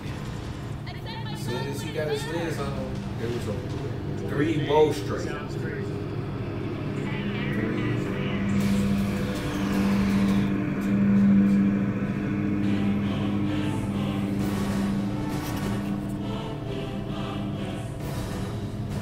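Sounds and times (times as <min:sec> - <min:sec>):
low droning hum: 0:00.0 - 0:19.0.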